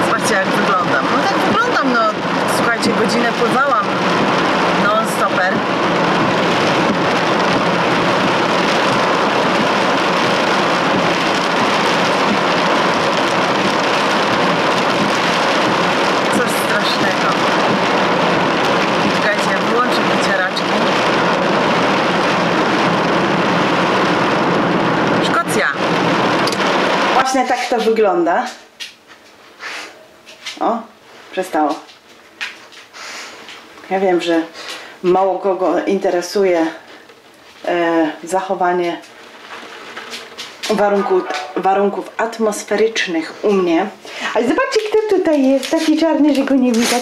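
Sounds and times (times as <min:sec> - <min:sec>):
heavy rain on car roof: 0:00.0 - 0:28.1, 0:31.4 - 0:43.2, 0:44.0 - 0:47.0.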